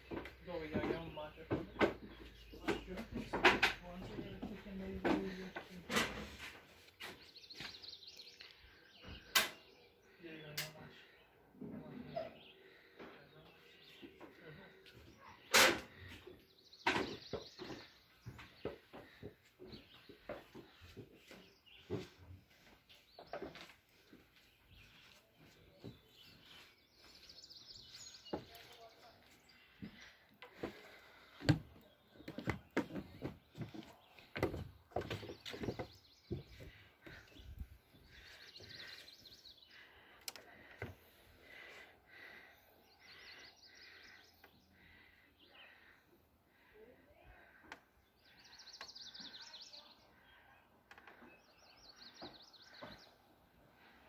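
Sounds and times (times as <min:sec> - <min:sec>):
birdsong warbling: 0:00.0 - 0:54.0.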